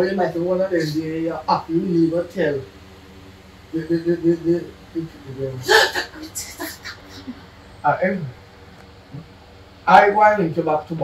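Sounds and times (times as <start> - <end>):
man speaking in clipped syllables: 0.0 - 2.6, 3.8 - 5.7, 7.9 - 8.3, 9.9 - 11.0.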